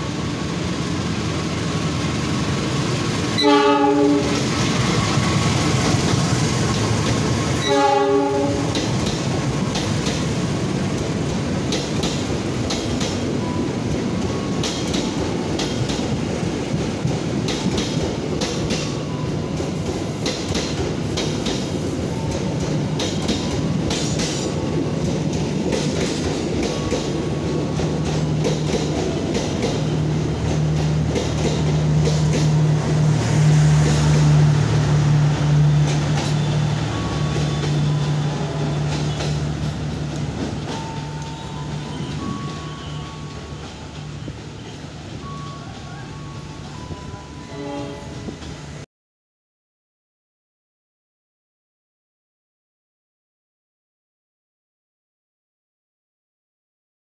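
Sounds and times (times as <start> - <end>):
train rumbling past: 0.0 - 48.9
locomotive horn blasts: 3.4 - 4.4, 7.6 - 8.8, 47.4 - 48.4.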